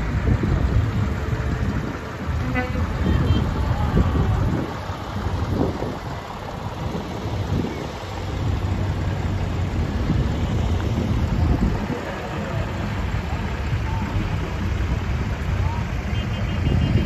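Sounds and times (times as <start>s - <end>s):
tractor engine drone: 0.0s - 17.0s.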